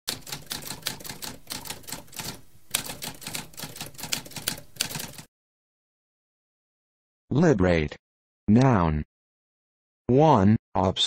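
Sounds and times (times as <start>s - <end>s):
typewriter typing: 0.1s - 5.3s.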